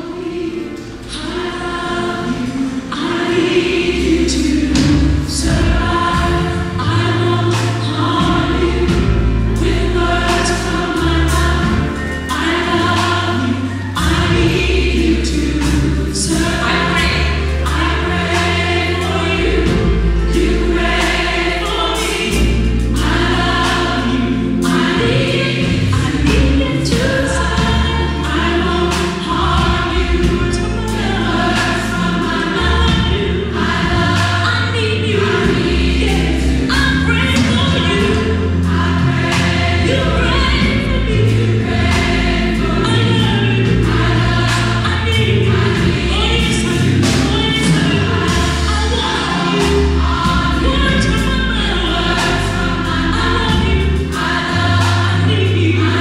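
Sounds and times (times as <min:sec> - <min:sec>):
gospel choir singing: 0:00.0 - 0:56.0
instrumental accompaniment with bass: 0:00.0 - 0:56.0.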